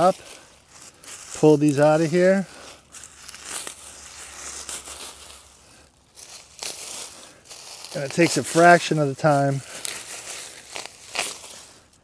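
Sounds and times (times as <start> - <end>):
dry stems crackling and rustling: 0.0 - 12.0.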